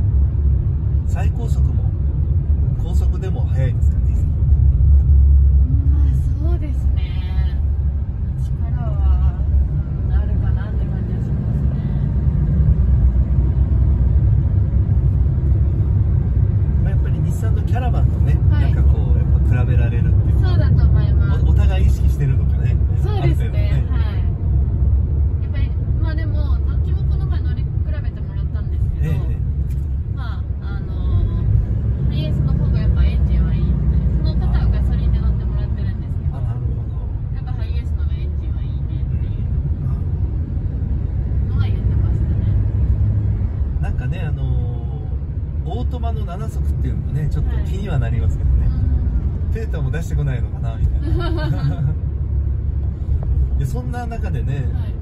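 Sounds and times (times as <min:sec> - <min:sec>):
engine and road rumble: 0:00.0 - 0:55.0.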